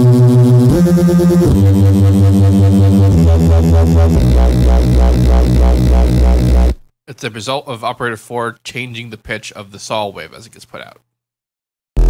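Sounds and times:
pulsing synth bass notes: 0.0 - 6.8.

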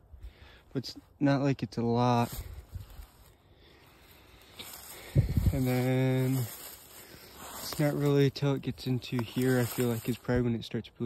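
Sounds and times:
dry grass rustling: 0.2 - 11.0.

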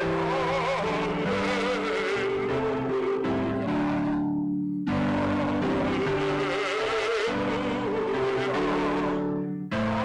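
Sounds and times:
person singing with vibrato: 0.0 - 10.0.

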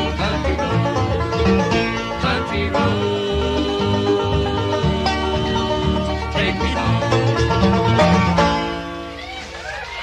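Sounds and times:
upright bass line: 0.0 - 9.2
banjo: 0.0 - 10.0
fiddle or mandolin: 0.0 - 10.0
guitar: 0.0 - 10.0.

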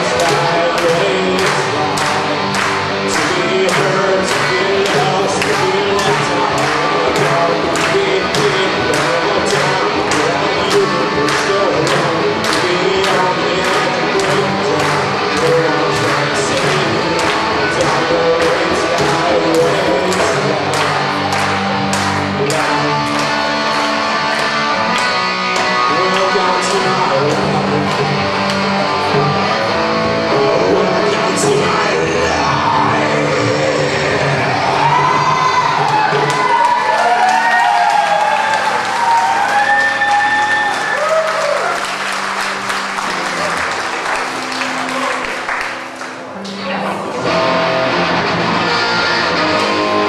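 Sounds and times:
person singing: 0.0 - 41.9
electric guitars: 0.0 - 50.0.

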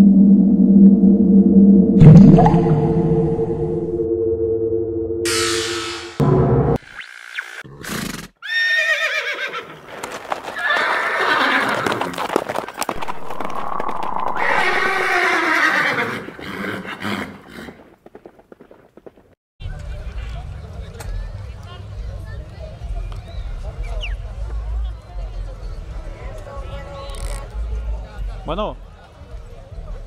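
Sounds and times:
horse whinnies: 7.7 - 9.8, 10.5 - 12.3, 13.4 - 17.8
hoofbeats: 9.6 - 20.4
music: 24.1 - 30.0.

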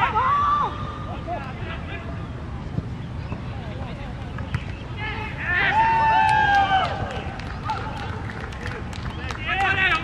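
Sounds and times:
distant shouts and calls: 0.0 - 2.5, 4.5 - 10.0.

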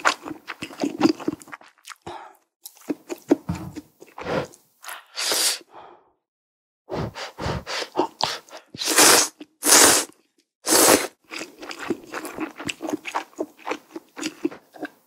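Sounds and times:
soft chewing: 2.6 - 5.1, 11.3 - 15.0
slurping noodles: 4.0 - 5.7, 6.9 - 13.2.

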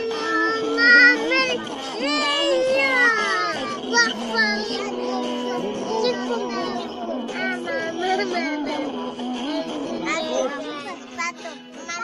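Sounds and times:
high singing voice: 0.0 - 12.0
music: 0.0 - 12.0.

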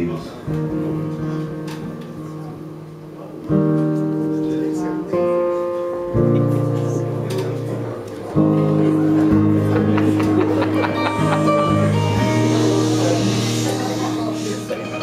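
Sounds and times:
acoustic guitar chords: 0.0 - 15.0.

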